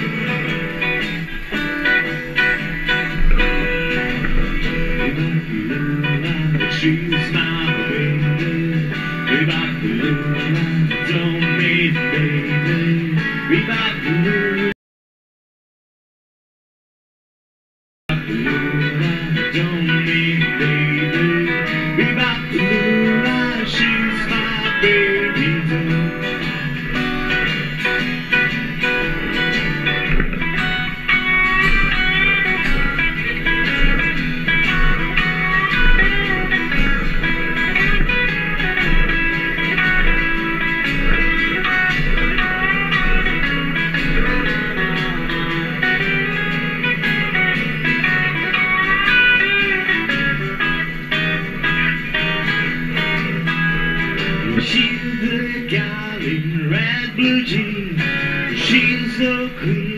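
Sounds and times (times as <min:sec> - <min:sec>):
plucked double bass: 0:00.0 - 0:14.4, 0:18.1 - 0:55.6
electric guitar lead: 0:00.0 - 0:14.7, 0:18.1 - 0:59.9
strummed acoustic guitar: 0:00.0 - 0:14.8, 0:18.1 - 0:59.9.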